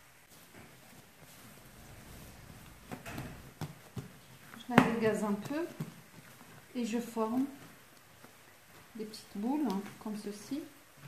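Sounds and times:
hands kneading dough: 0.0s - 11.0s
soft dough thumps: 0.2s - 11.0s.

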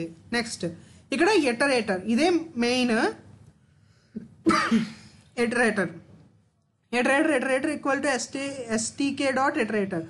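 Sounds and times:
man coughing: 4.4s - 5.2s.

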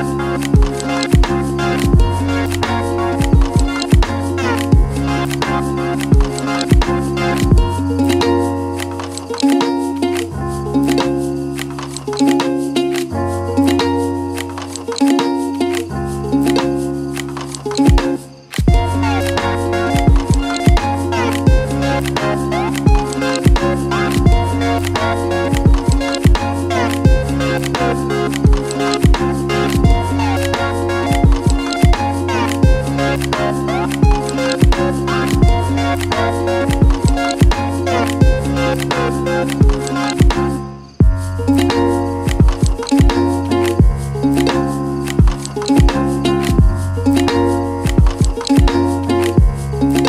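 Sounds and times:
lo-fi hip hop music: 0.0s - 50.0s
kick drum hits: 0.6s - 2.2s, 3.2s - 4.1s, 4.7s - 4.9s, 6.1s - 7.8s, 17.9s - 19.0s, 20.0s - 20.8s, 21.5s - 21.7s, 22.9s - 23.6s, 24.2s - 24.5s, 25.5s - 26.4s, 27.0s - 27.3s, 28.4s - 29.2s, 29.8s - 30.0s, 31.1s - 32.0s, 32.6s - 32.8s, 34.0s - 34.8s, 35.4s - 35.6s, 36.7s - 37.6s, 38.2s - 38.4s, 39.6s - 40.4s, 41.0s - 41.2s, 42.3s - 44.0s, 45.2s - 46.9s, 47.9s - 48.8s, 49.4s - 49.6s.

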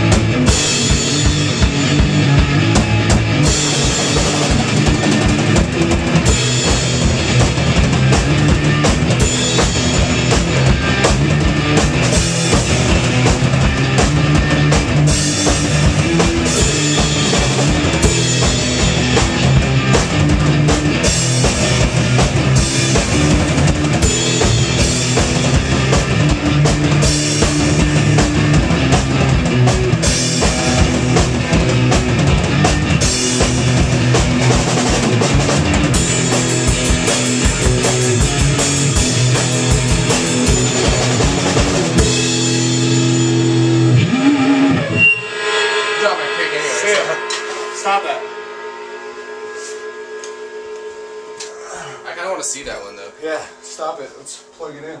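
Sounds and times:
electric guitar: 0.0s - 51.6s
drum kit: 0.0s - 55.0s
amplifier hum: 46.8s - 55.0s.

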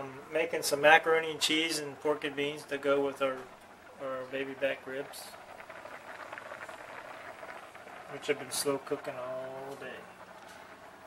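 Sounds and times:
water boiling in a pot: 0.0s - 11.0s.

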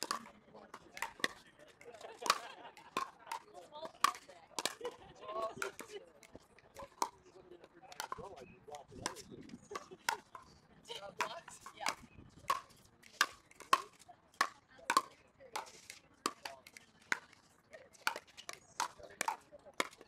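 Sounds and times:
faint voices: 0.0s - 20.0s
paddles hitting plastic ball: 0.0s - 20.0s.

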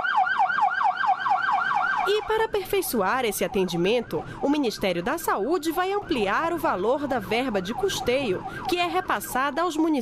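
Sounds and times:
ambulance siren yelping: 0.0s - 10.0s.

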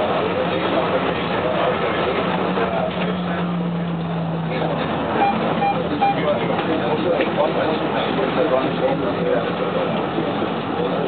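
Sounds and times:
tram running with motor hum: 0.0s - 11.0s
short high beeps: 5.2s - 6.2s.

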